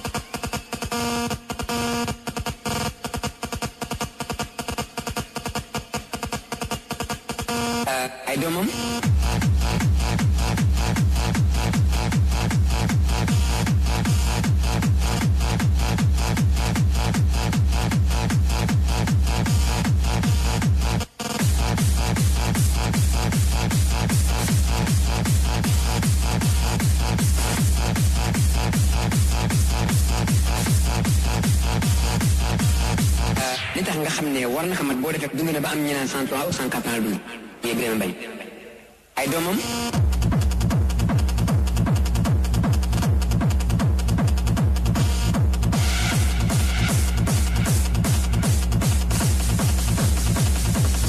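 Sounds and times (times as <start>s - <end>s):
heavy kick drum beat: 0.0s - 7.8s, 8.6s - 33.8s, 39.9s - 51.0s
hardstyle dance music: 0.0s - 51.0s.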